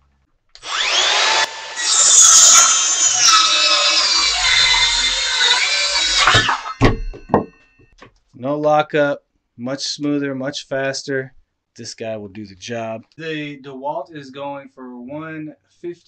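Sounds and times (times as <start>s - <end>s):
circular saw cutting wood: 0.6s - 6.8s.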